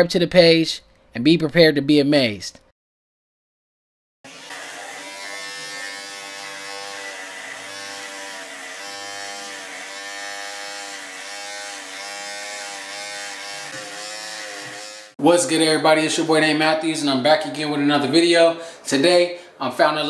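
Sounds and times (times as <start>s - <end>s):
electric hair clippers buzzing: 4.3s - 15.2s.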